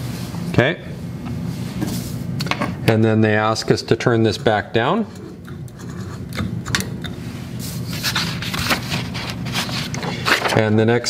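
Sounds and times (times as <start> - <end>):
low electrical hum: 0.0 - 11.0
paper rustling: 7.8 - 10.7.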